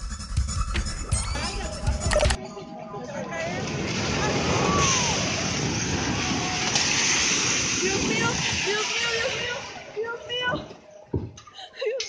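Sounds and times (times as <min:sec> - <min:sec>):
people crying out: 0:03.4 - 0:07.2
rumble of falling debris: 0:03.7 - 0:09.5.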